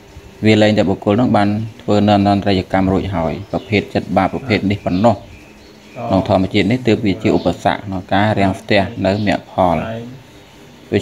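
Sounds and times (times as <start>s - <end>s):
man preaching: 0.4s - 5.3s, 6.0s - 10.3s.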